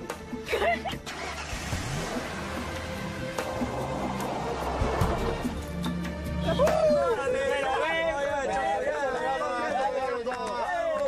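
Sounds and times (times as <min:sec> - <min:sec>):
car engine revving: 0:01.1 - 0:05.8.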